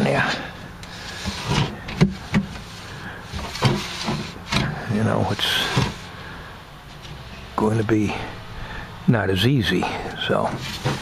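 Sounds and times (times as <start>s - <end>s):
wooden tray sliding on tracks: 0.2s - 6.1s, 10.4s - 11.0s.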